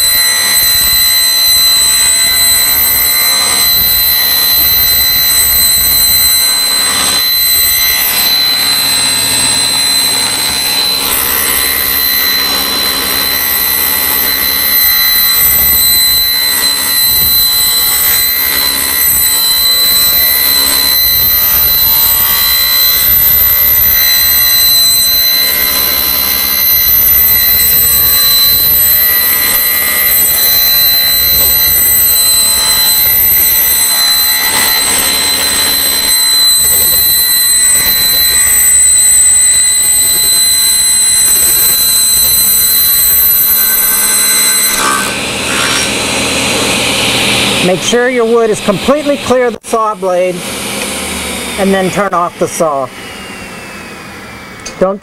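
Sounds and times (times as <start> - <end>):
table saw high-pitched whine: 0.0 - 55.0.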